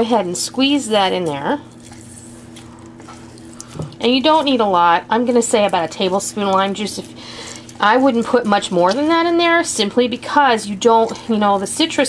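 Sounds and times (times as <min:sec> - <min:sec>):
steady low hum: 0:00.0 - 0:12.0
fruit squishing: 0:01.1 - 0:04.6
juice dripping into bowl: 0:01.3 - 0:07.9.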